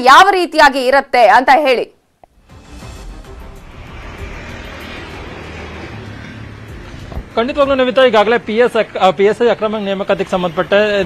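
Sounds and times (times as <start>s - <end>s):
low hum: 2.2s - 9.0s
noisy rumble: 2.3s - 10.0s.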